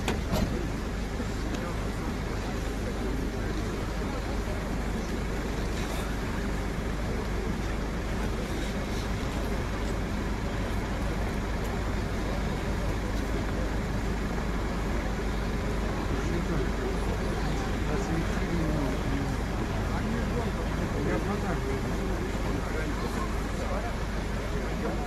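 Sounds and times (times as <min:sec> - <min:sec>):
faint distant voices: 0:00.0 - 0:25.0
fire engine motor rumbling: 0:00.0 - 0:25.0.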